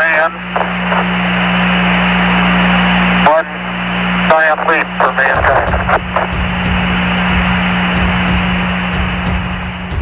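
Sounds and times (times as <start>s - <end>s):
radio static hiss: 0.0s - 9.6s
low hum: 0.0s - 10.0s.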